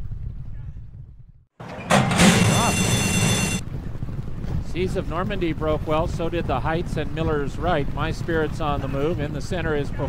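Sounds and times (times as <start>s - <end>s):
starting bell ringing: 1.6s - 3.6s
starting gate crashing open: 1.6s - 3.6s
track noise: 1.6s - 3.6s.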